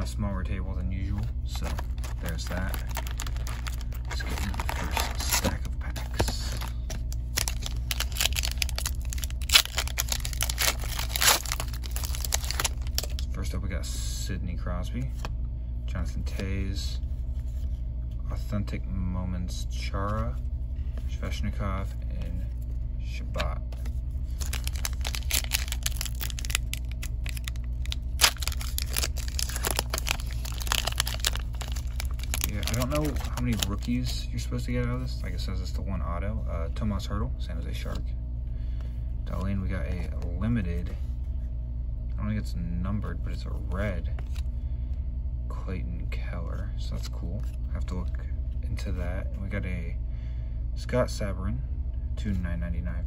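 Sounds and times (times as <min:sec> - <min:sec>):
low steady hum: 0:00.0 - 0:53.0
foil wrapper crinkling and tearing: 0:01.5 - 0:13.3, 0:24.3 - 0:34.1.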